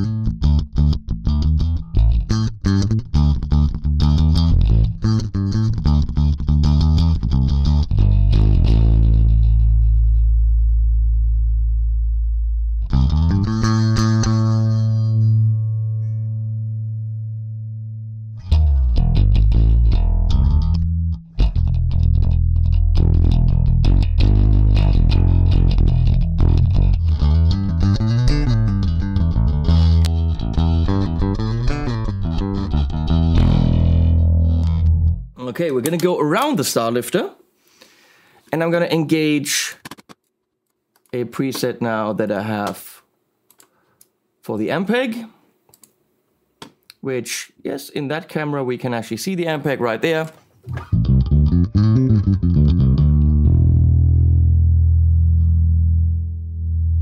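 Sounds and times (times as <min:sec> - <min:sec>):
electric bass playing: 0:00.0 - 0:35.4, 0:50.7 - 0:57.0.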